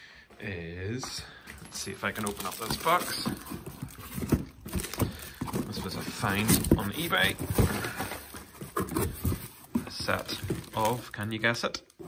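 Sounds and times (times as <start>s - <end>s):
hands rummaging in a box: 1.5s - 11.4s
cardboard box being handled: 2.0s - 11.2s.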